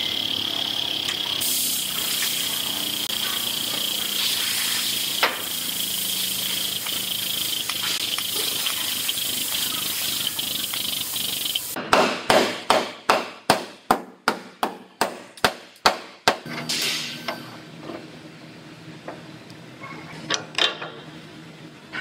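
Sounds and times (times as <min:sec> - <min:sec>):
steady hiss: 0:01.4 - 0:11.8.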